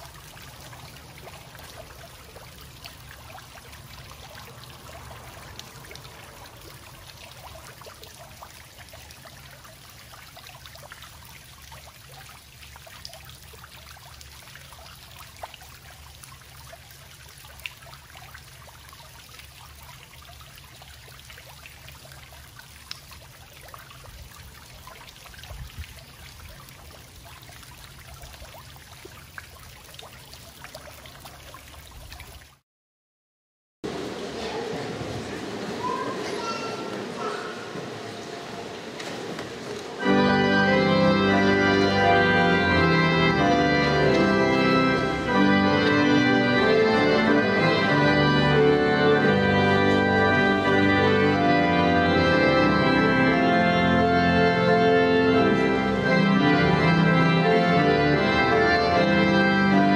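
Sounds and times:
fountain water splashing: 0.0s - 32.6s, 33.9s - 59.9s.

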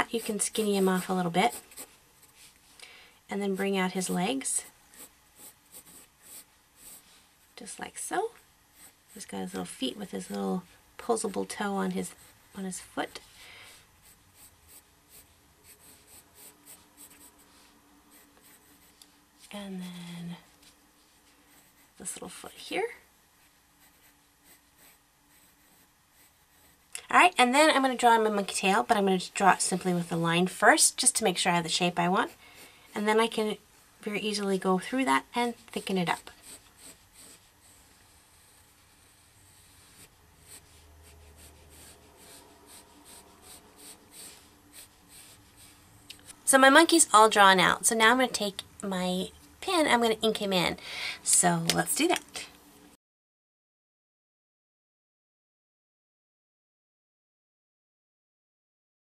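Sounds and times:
pencil scratching on paper: 0.0s - 2.4s, 4.9s - 7.1s, 14.0s - 19.0s, 21.0s - 22.2s, 23.8s - 26.9s, 35.8s - 45.8s.

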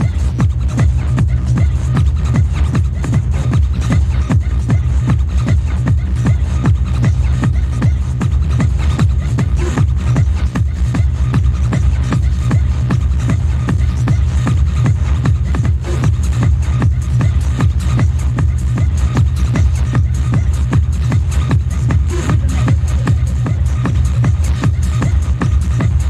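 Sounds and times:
fast hard electronic dance music: 0.0s - 26.0s.

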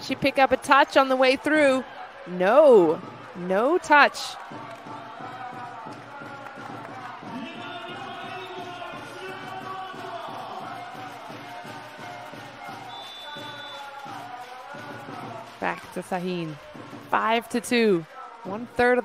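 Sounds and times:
crowd chanting: 0.0s - 16.0s
music with an even beat: 4.5s - 15.8s
high whistle: 12.6s - 13.9s.

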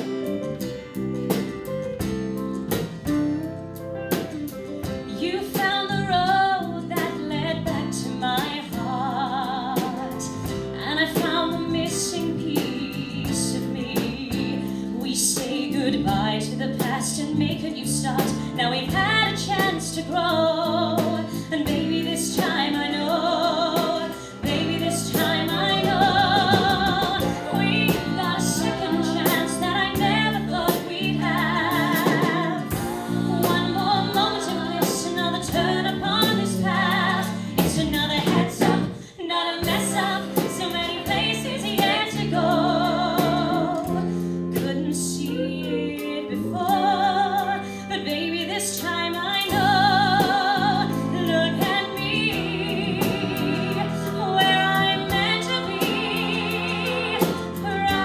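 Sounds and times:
band accompaniment: 0.0s - 58.0s
woman singing with vibrato: 5.1s - 58.0s.

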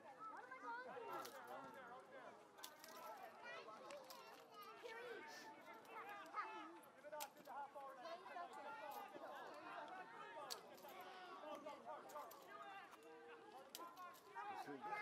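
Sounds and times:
people talking: 0.0s - 15.0s.

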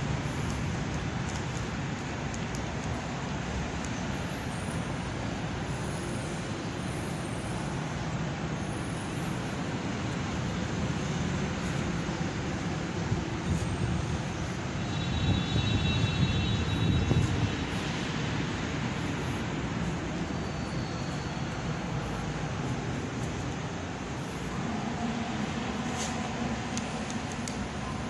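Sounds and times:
road traffic rumble: 0.0s - 28.0s.

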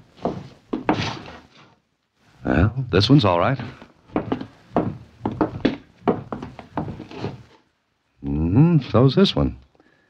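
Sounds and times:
footsteps on wooden floor: 0.0s - 1.8s, 3.6s - 7.6s.

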